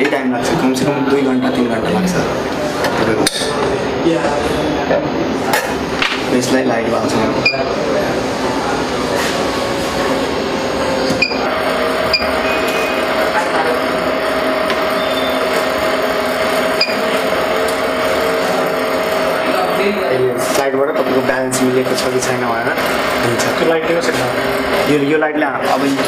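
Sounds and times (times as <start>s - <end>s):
rework station humming: 0.0s - 26.0s
short electronic beeps: 7.4s - 7.7s, 11.2s - 11.4s, 12.1s - 13.1s, 14.9s - 15.5s, 16.8s - 17.0s.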